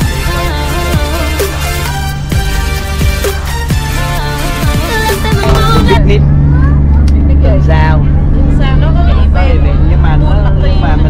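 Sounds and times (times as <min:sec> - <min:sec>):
background music: 0:00.0 - 0:06.9
boat engine droning: 0:00.0 - 0:11.0
people talking: 0:05.0 - 0:11.0.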